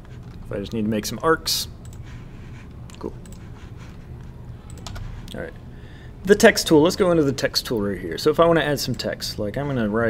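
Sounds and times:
low steady hum: 0.0s - 10.0s
keyboard and mouse clicks: 2.9s - 3.5s, 4.7s - 5.1s.

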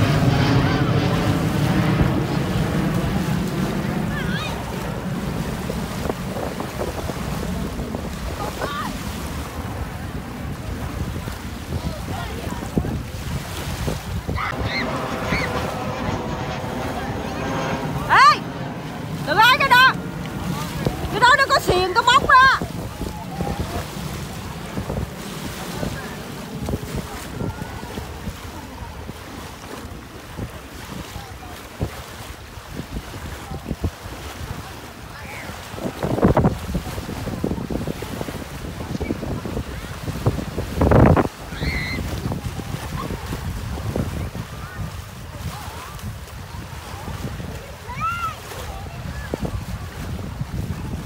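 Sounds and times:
wind buffeting microphone: 0.0s - 51.0s
waves washing onto gravel shore: 1.0s - 14.6s, 19.1s - 51.0s.

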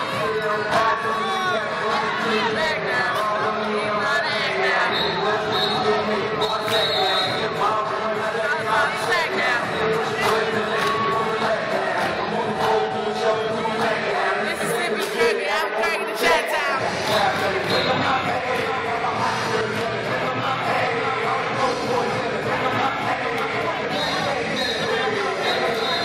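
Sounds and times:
crowd chanting and shouting: 0.0s - 26.0s
people shouting: 0.8s - 3.2s.

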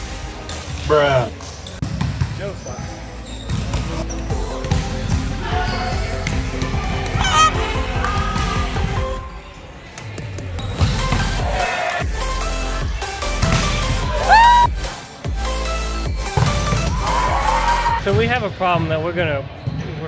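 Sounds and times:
sneakers squeaking on court: 0.5s - 7.6s, 10.2s - 11.4s
instrumental music with a beat: 4.3s - 9.3s, 10.8s - 18.0s.

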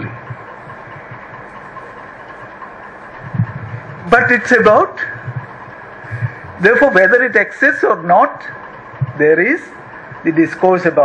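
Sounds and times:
microphone hum and hiss: 0.0s - 11.0s.

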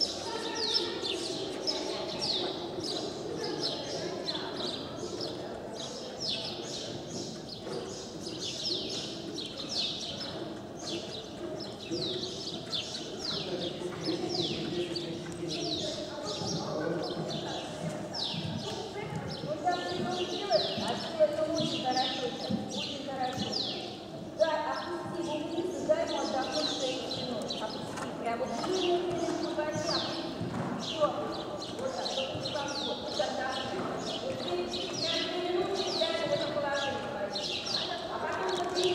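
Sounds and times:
small birds chirping: 0.0s - 38.9s.

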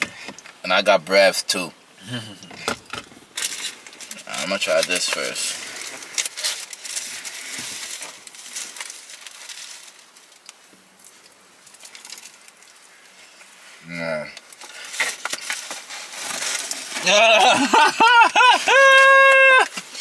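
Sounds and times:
paper packaging rustling: 3.3s - 13.6s, 14.5s - 20.0s.

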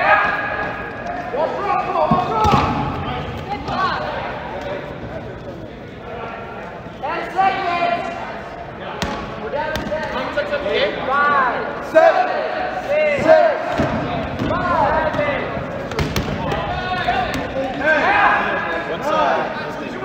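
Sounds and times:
balls thudding and bouncing: 2.0s - 5.2s, 9.0s - 10.2s, 13.2s - 17.8s.

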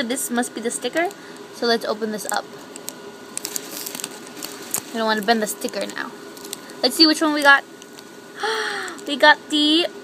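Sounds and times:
foil packet crinkling: 2.0s - 8.2s.

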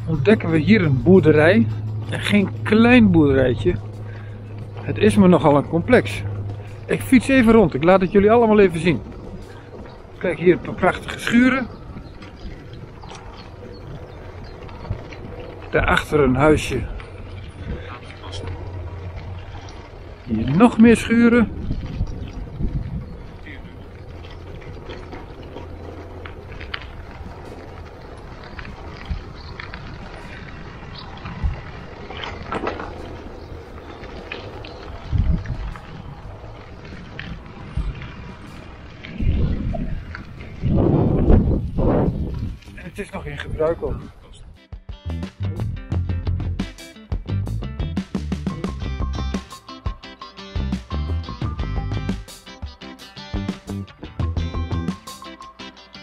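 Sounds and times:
bicycle rolling over cobblestones: 0.0s - 44.6s, 45.4s - 56.0s
wind rumbling on microphone: 0.0s - 44.6s.

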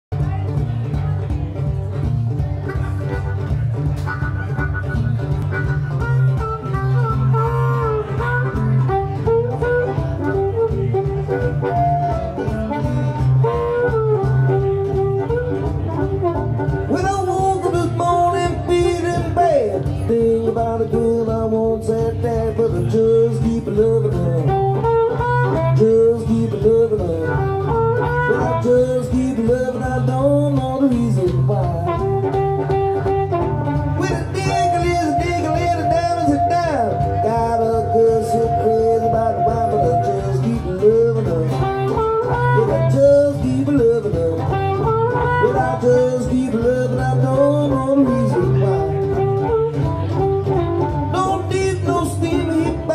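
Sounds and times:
guitar rhythm: 0.1s - 52.9s
blues harmonica solo: 2.5s - 19.1s, 24.2s - 26.3s, 27.0s - 29.2s, 31.5s - 52.9s.

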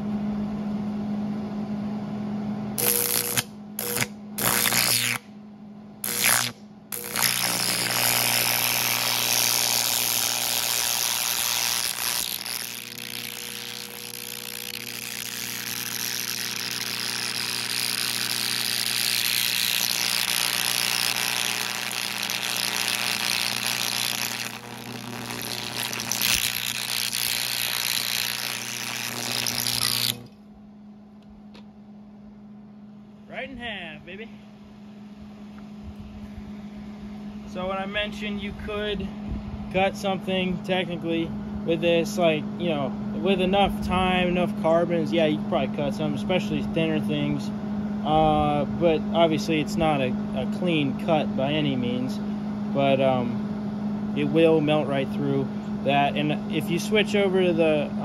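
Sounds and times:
steady low hum: 0.0s - 58.0s
carbon rods sputtering strikes: 2.8s - 5.2s, 6.0s - 30.3s
hissing crackling arc: 2.8s - 5.2s, 6.0s - 30.3s.

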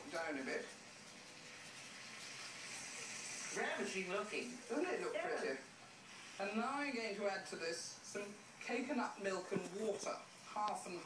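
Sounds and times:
food sizzling in a pan: 0.0s - 9.3s.

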